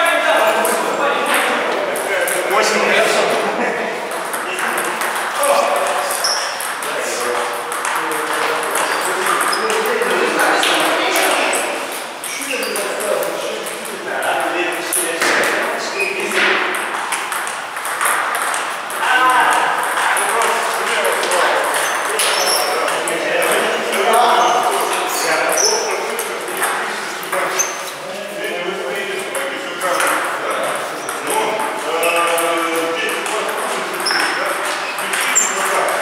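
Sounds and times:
men talking: 0.0 - 36.0
table tennis ball clicking: 16.7 - 20.6.

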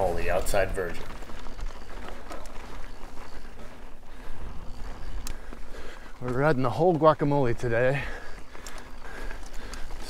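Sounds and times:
bike tyres rolling over rock: 0.0 - 10.0.

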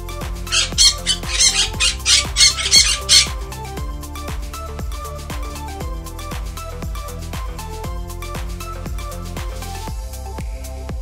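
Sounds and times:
electronic background music: 0.0 - 11.0
parrot squawking: 0.5 - 3.6.

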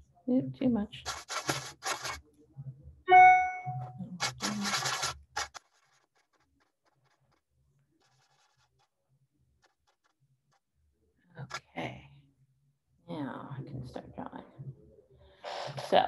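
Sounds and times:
short steady tone: 3.1 - 3.9.

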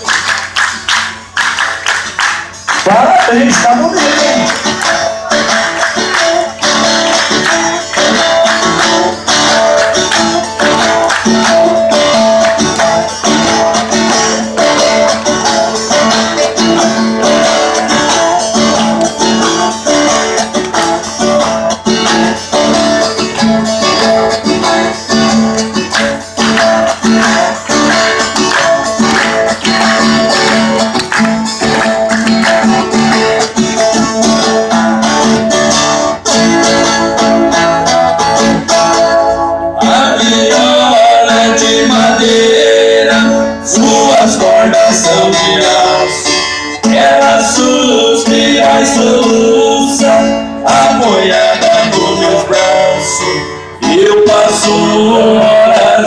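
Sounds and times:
live band playing: 0.0 - 56.0
strummed acoustic guitar: 0.0 - 56.0.

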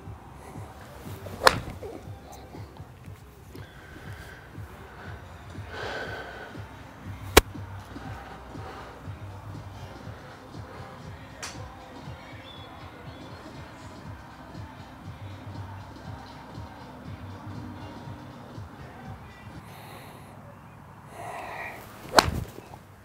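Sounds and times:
golf club striking ball: 1.1 - 2.3, 22.0 - 22.8.

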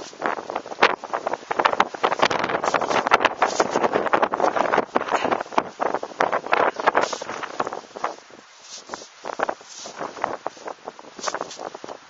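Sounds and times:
wind buffeting microphone: 0.0 - 12.0
snow shovel scraping snow: 2.6 - 3.9, 6.9 - 11.7.

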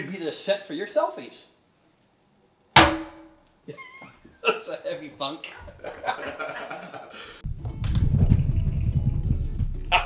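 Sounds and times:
heavy glass thunk on tabletop: 2.8 - 3.4.

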